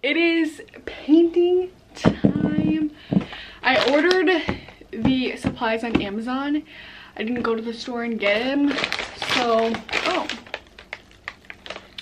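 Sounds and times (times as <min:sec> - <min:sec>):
paper and plastic crinkling: 0:02.2 - 0:04.8, 0:08.2 - 0:12.0.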